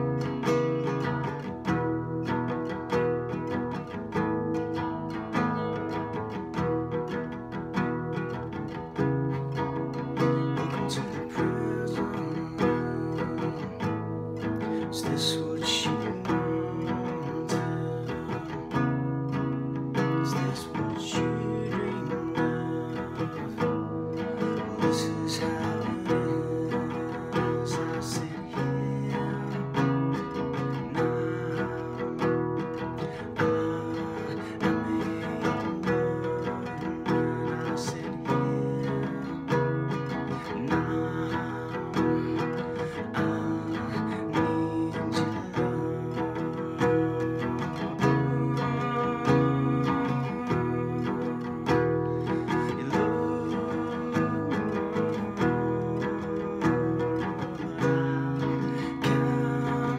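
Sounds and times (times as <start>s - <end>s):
classical guitar strumming: 0.0s - 59.9s
man singing: 8.7s - 59.9s.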